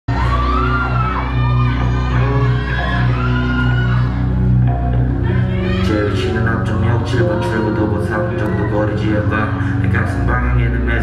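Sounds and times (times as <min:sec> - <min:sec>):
deep sustained bass notes: 0:00.1 - 0:11.0
fans screaming and cheering: 0:00.1 - 0:11.0
loud live concert music: 0:00.1 - 0:11.0.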